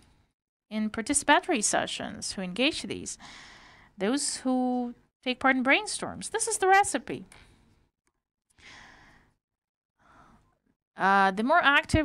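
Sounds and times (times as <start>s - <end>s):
soft breath into microphone: 3.2s - 4.0s, 8.6s - 9.4s, 10.0s - 10.5s.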